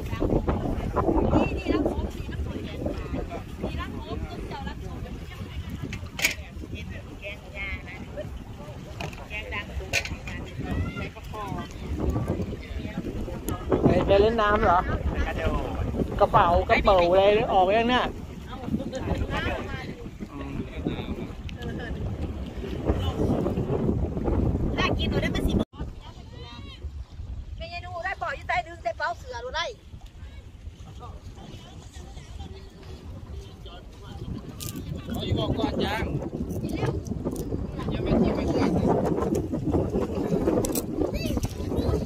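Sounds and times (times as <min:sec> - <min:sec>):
wind buffeting microphone: 0:00.0 - 0:42.0.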